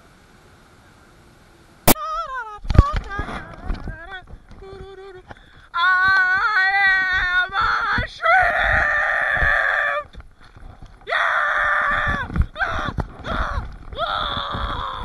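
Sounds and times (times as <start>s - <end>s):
woman screaming: 5.8s - 10.1s, 11.1s - 15.0s.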